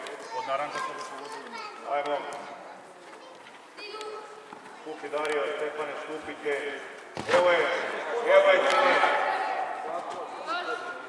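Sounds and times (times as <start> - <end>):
indoor football game noise: 0.0 - 11.0.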